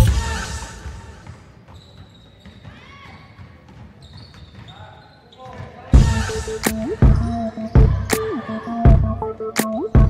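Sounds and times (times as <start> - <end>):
sneakers squeaking: 0.0 - 10.0
basketball bouncing: 6.0 - 8.2.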